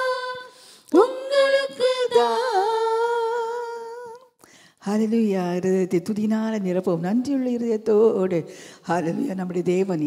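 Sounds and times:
woman speaking: 5.0 - 10.0.

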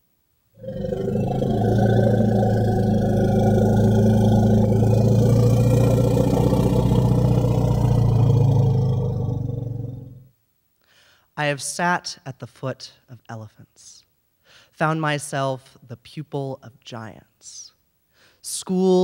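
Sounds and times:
elephant rumbles: 0.6 - 10.2.

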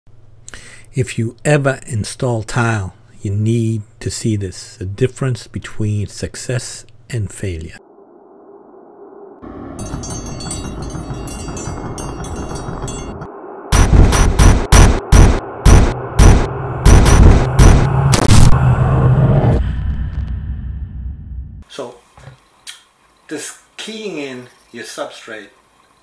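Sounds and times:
low drone: 7.8 - 21.6
shimmering high texture: 9.4 - 13.4
loud booming hits: 13.7 - 19.6.

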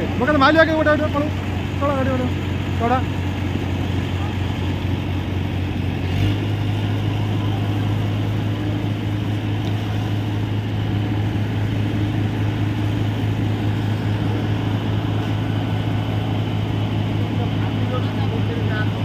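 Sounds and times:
pump engine droning: 0.0 - 19.0.

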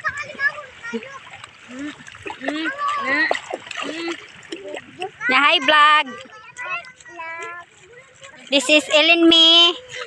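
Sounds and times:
people talking and calling: 0.0 - 10.0
water splashing: 0.0 - 10.0.

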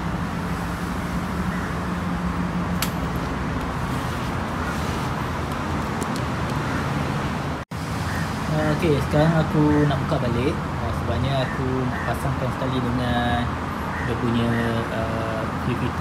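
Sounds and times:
sharp click: 2.8 - 3.1.

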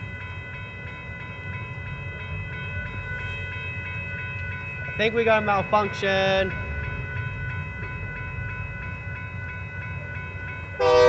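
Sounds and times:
railroad crossing bell ringing: 0.0 - 11.0.

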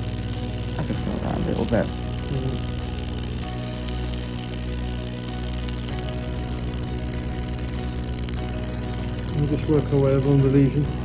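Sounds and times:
background music: 0.0 - 11.0
laser rapid clicking: 0.0 - 11.0.

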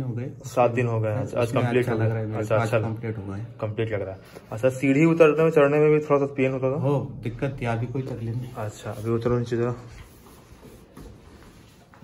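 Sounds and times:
clothing rustling: 8.0 - 12.0.

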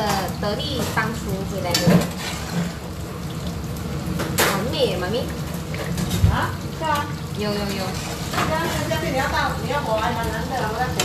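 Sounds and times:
tofu sizzling in hot oil: 0.0 - 11.0.

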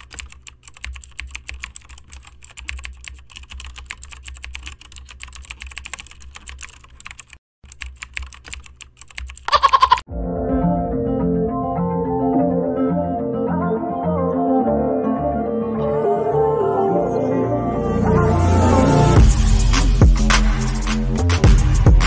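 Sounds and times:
keyboard typing clicks: 0.0 - 10.0.

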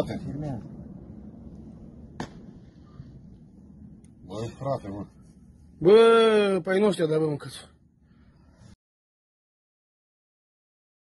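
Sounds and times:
low steady rumble: 0.0 - 8.8
sharp crack: 2.0 - 3.0.

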